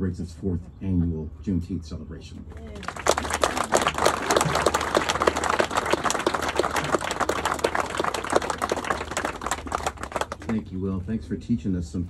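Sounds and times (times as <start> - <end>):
audience applauding: 2.6 - 10.6.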